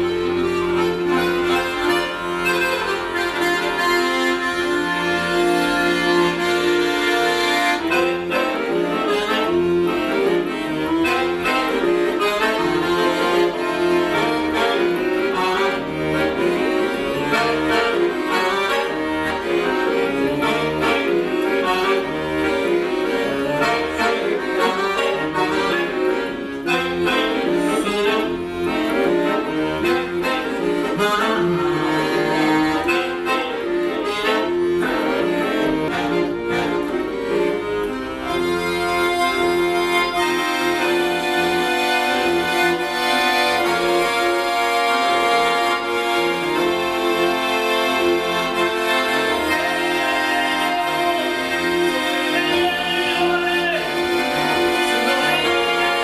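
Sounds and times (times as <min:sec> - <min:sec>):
button accordion playing: 0:00.0 - 0:56.0.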